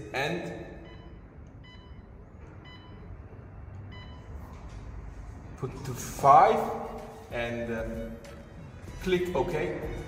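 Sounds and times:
short electronic keypad beeps: 0.8s - 3.1s.

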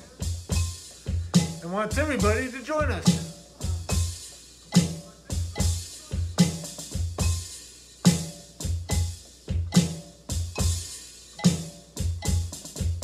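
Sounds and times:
electronic drum kit groove: 0.0s - 13.0s.

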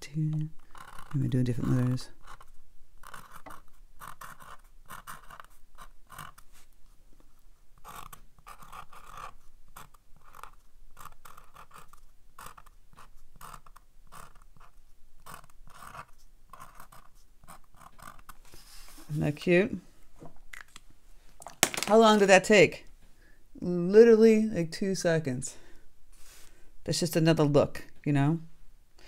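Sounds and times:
pen writing on paper: 0.6s - 6.4s, 7.8s - 18.4s.

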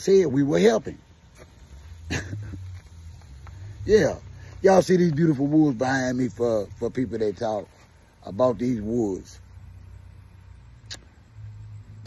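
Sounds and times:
low steady background rumble: 0.0s - 12.0s
single sharp click: 10.8s - 11.1s.

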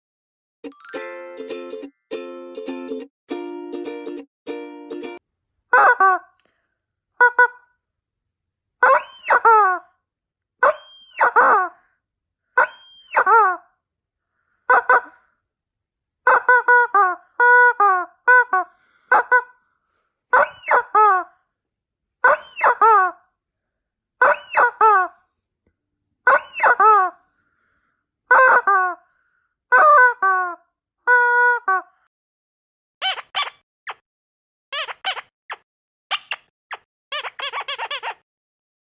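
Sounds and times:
rubber chicken toy squawking: 5.7s - 6.4s, 7.2s - 7.8s, 8.8s - 9.9s, 10.6s - 11.8s, 12.6s - 13.7s, 14.7s - 15.3s, 16.2s - 19.6s, 20.3s - 21.4s, 22.2s - 23.3s, 24.2s - 25.2s, 26.2s - 27.2s, 28.3s - 29.0s, 29.7s - 32.0s, 33.0s - 34.0s, 34.7s - 38.2s.

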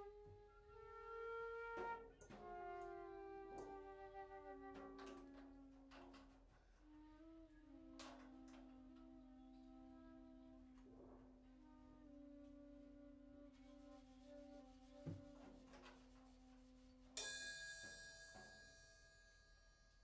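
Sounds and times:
flutes playing slow lines: 0.0s - 6.2s, 6.8s - 15.6s.

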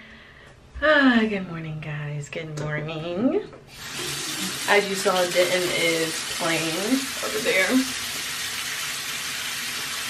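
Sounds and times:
tap water running into sink: 3.7s - 10.0s.

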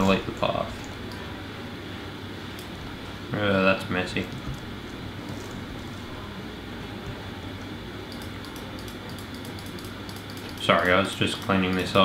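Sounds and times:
low room hum: 0.0s - 12.0s
keyboard and mouse clicks: 8.1s - 12.0s.

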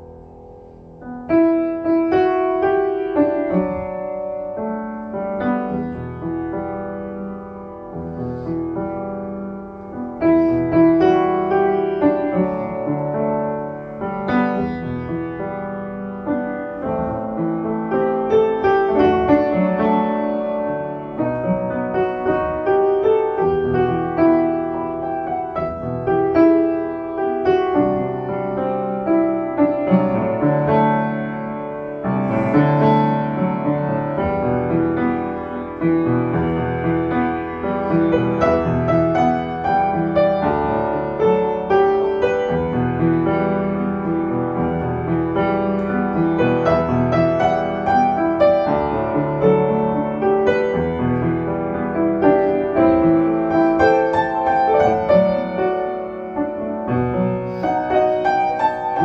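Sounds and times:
solo upright piano playing: 0.0s - 59.0s.

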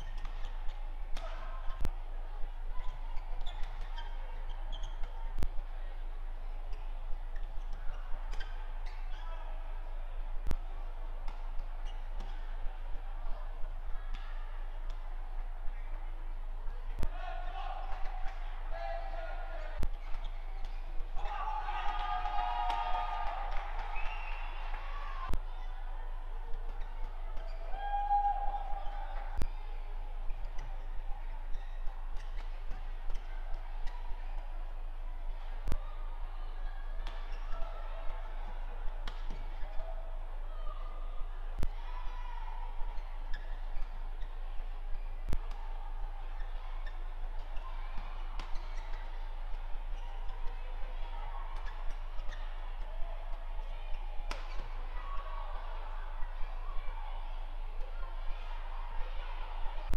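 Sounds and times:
court noise: 0.0s - 59.9s
shoe squeaks on court: 2.8s - 5.2s.

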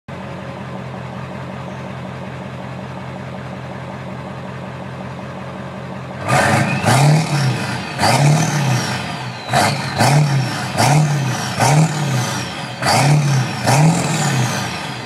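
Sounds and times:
diesel truck engine idling and revving: 0.1s - 15.0s.

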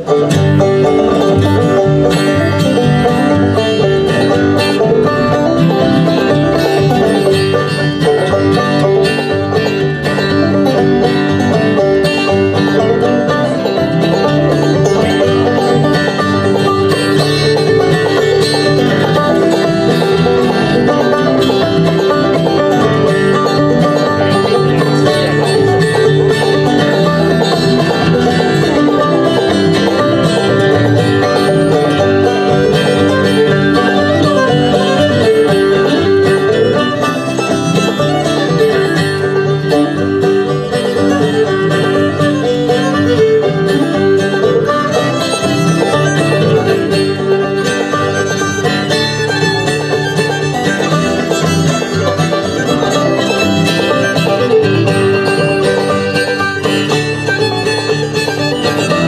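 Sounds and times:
banjo: 0.0s - 59.0s
bluegrass band playing: 0.0s - 59.0s
fiddle: 0.0s - 59.0s.

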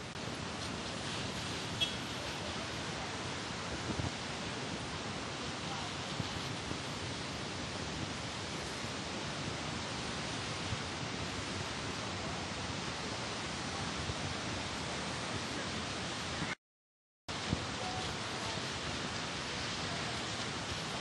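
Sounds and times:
rain falling on a street: 0.0s - 16.6s, 17.3s - 21.0s.

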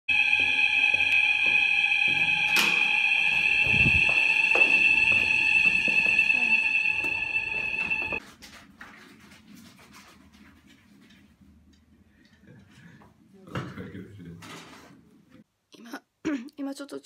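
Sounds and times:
steady high-pitched tone: 0.1s - 8.2s.

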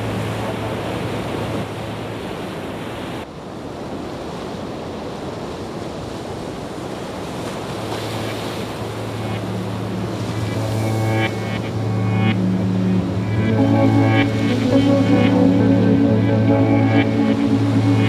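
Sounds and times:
low steady hum: 8.6s - 18.0s.

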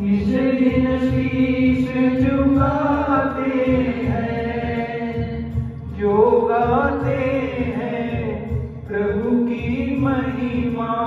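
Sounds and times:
man singing devotional song: 0.0s - 11.0s.

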